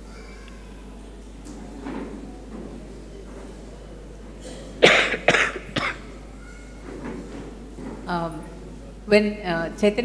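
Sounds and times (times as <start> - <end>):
person coughing: 4.4 - 6.1.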